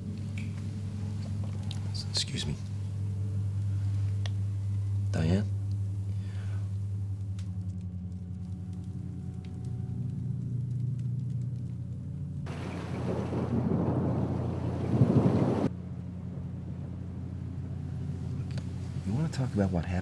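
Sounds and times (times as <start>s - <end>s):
low drone: 0.0s - 20.0s.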